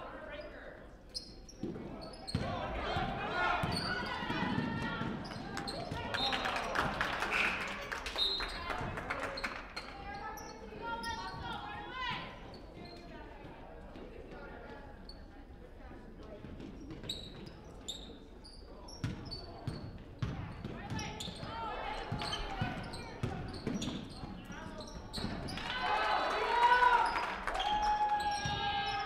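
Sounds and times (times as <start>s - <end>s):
shoe squeaks: 1.1s - 2.4s, 16.8s - 19.9s, 20.5s - 25.6s.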